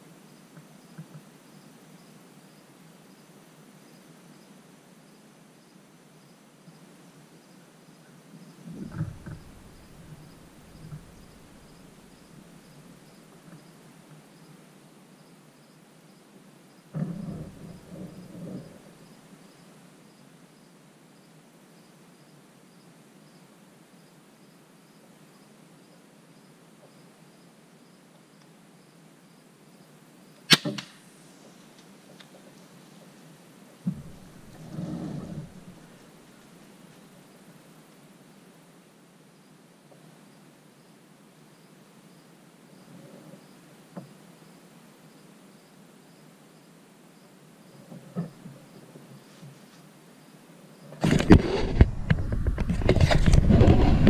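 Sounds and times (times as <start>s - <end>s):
insects chirping: 0.0s - 54.0s
low rustling and knocking: 8.7s - 13.6s, 17.0s - 19.1s, 33.8s - 36.1s, 51.0s - 54.0s
crossbow string snapping: 30.5s - 31.0s.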